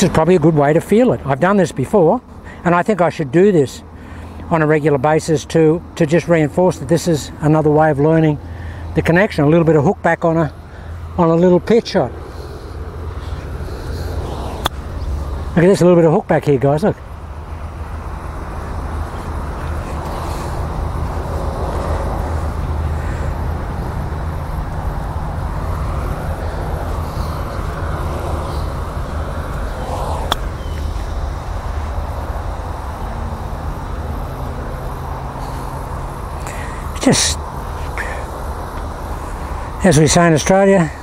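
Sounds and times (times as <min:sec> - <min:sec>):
low outdoor rumble: 0:00.0 - 0:41.0
golf club striking ball: 0:14.6 - 0:14.8, 0:30.2 - 0:30.8.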